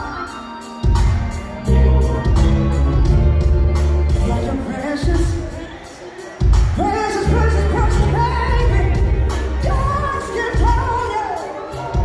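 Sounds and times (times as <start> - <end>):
drums: 0.0 - 12.0
bass: 1.0 - 5.3, 6.6 - 11.0.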